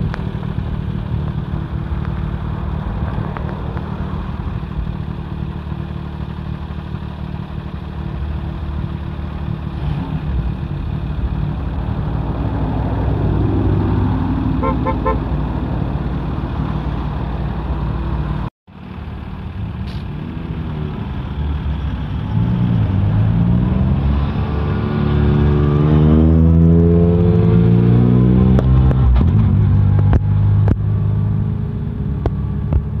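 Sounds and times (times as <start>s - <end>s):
rally cars idling: 0.0s - 12.3s
car accelerating away: 20.0s - 32.8s.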